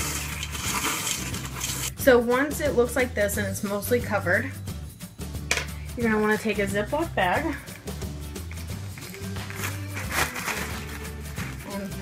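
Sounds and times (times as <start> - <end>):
spoon stirring cereal in metal bowl: 0.0 - 2.0.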